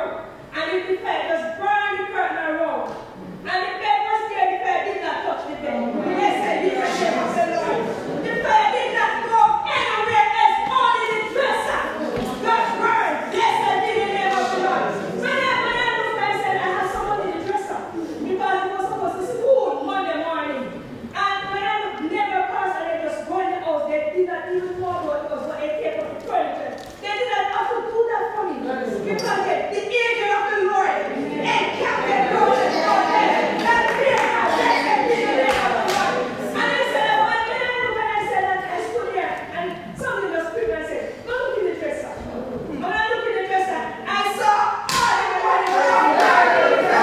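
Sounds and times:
congregation singing unaccompanied: 11.4 - 17.2, 30.9 - 37.6, 45.0 - 47.0.

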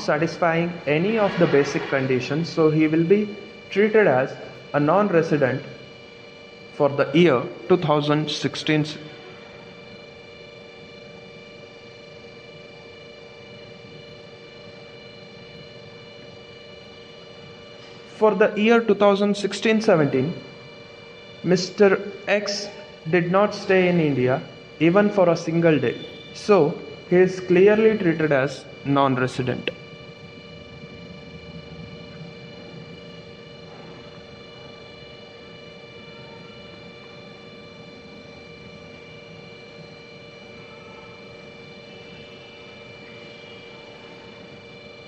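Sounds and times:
constant tones: 0.0 - 11.6, 12.5 - 43.4
electrical hum and hiss: 0.0 - 43.8.

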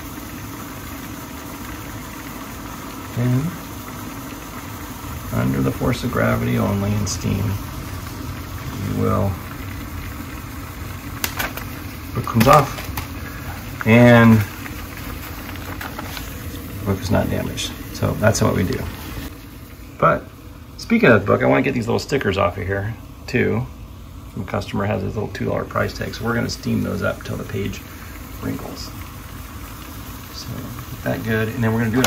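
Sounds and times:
steamer humming and hissing: 0.0 - 32.0.

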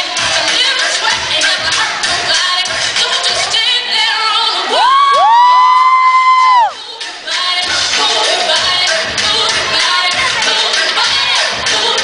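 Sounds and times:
pop dance music: 0.0 - 12.0
voices whooping: 4.7 - 6.8.

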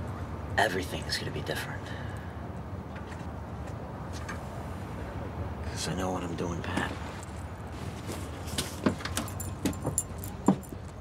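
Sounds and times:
metallic clinks and jingle: 9.0 - 11.0.

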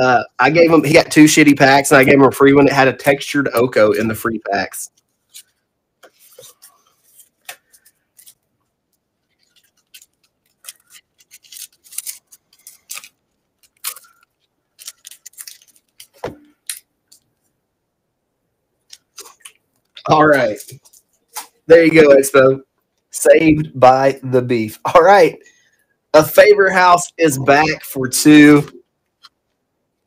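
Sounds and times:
cards and packs crinkling: 4.9 - 17.4, 18.8 - 21.6.

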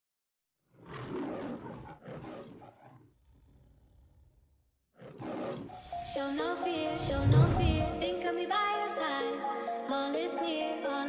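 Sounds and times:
lion roar: 0.7 - 5.7
low growl: 0.8 - 4.8, 7.0 - 8.0
intro music: 5.7 - 10.8.

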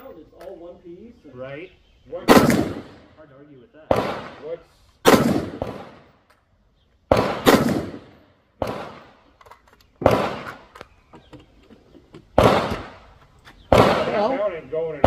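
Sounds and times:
rifle shots with echo: 2.2 - 3.2, 3.8 - 6.3, 7.1 - 9.3, 10.0 - 10.7, 12.3 - 13.1, 13.7 - 15.0.

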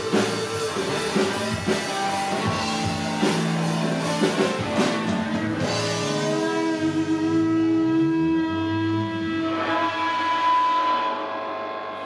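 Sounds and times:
bass line: 0.0 - 12.0.

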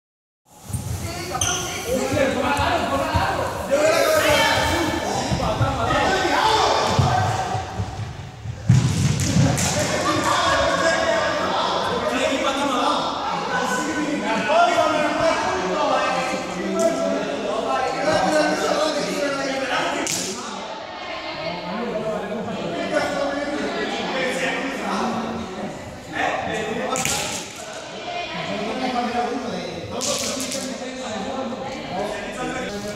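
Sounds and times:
voices echoing in hall: 0.5 - 32.9
loud thump: 6.9 - 9.8.

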